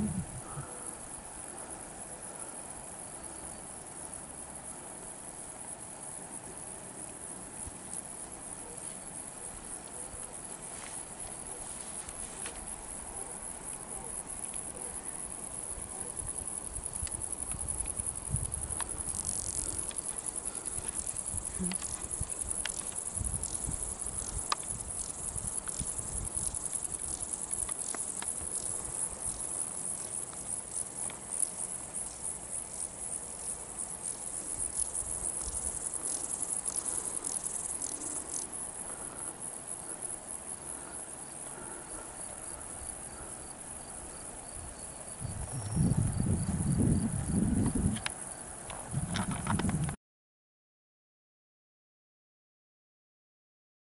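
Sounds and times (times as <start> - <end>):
insects chirping: 0.0 - 50.0.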